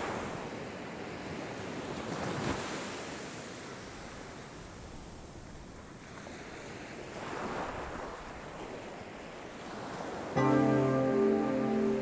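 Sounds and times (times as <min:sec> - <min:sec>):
ocean surf washing: 0:05.3 - 0:12.0
sustained musical chord: 0:10.4 - 0:12.0.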